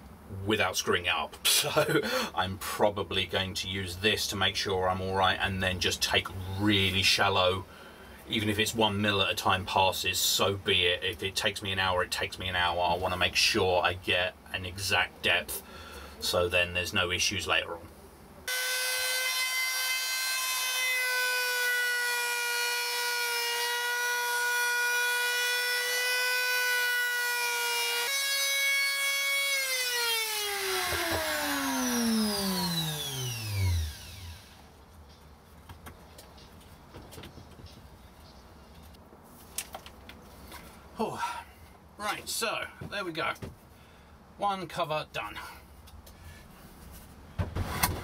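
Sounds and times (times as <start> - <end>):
router motor whine: 18.5 - 34.7.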